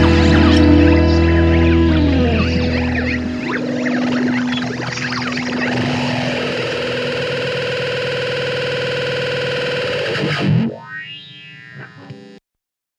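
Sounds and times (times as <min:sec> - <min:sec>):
low bass: 0:00.0 - 0:07.0
distorted electric guitar: 0:00.0 - 0:12.4.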